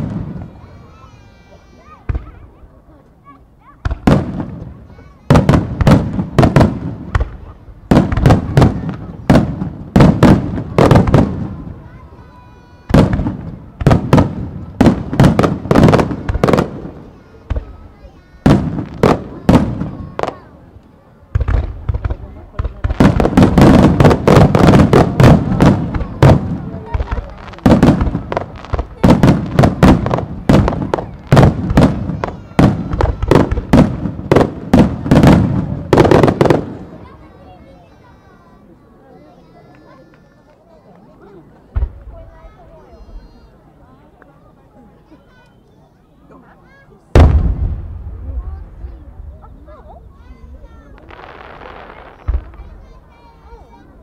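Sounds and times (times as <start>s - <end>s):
fireworks bursting: 0.0s - 38.4s, 39.4s - 43.5s, 47.0s - 54.0s.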